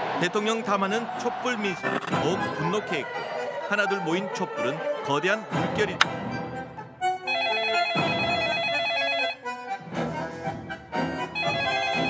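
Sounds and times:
telephone ringer warbling: 0:07.3 - 0:09.4, 0:11.4 - 0:12.0.

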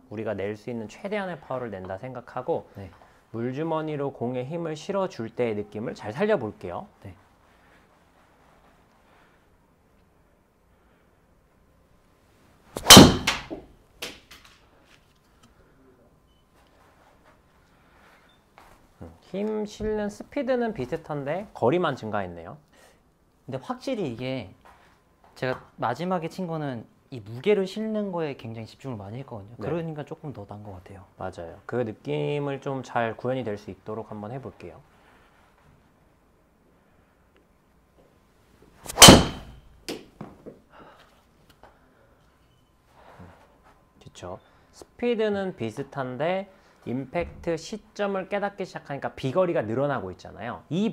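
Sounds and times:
golf club striking ball: 0:12.8 - 0:13.6, 0:38.9 - 0:39.6.

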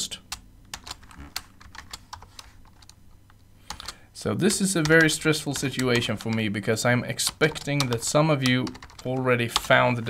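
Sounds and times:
keyboard typing: 0:00.3 - 0:03.0, 0:03.7 - 0:06.6, 0:07.3 - 0:09.8.

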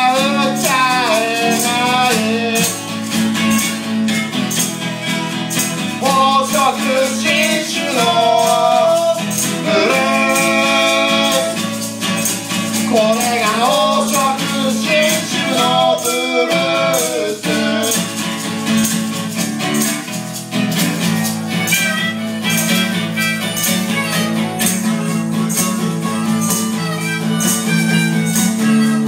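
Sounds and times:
man singing: 0:00.0 - 0:02.9, 0:05.9 - 0:12.0, 0:12.6 - 0:18.2
acoustic guitar strumming: 0:00.0 - 0:29.0
maracas shaking: 0:00.0 - 0:29.0.

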